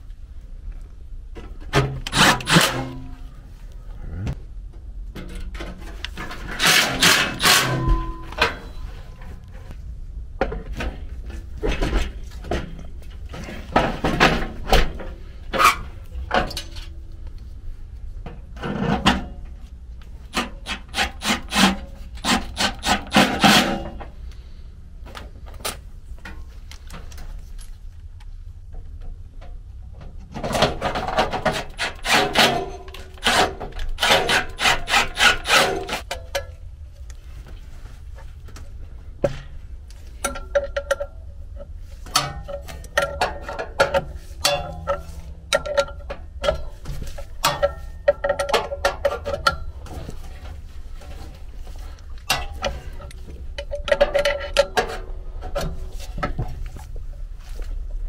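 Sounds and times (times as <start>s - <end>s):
low hum: 0.0s - 20.9s
metal clicking and scraping: 1.4s - 3.4s, 5.1s - 9.8s, 10.7s - 17.5s, 18.3s - 24.4s, 30.2s - 37.3s, 39.2s - 57.9s
metal ringing tone: 7.5s - 9.2s.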